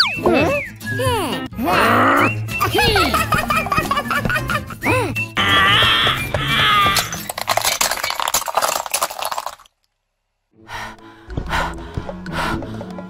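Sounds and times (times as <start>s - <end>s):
squeaky cartoon voice effect: 0.0s - 3.3s
figurines crunching under tyre: 5.4s - 9.9s.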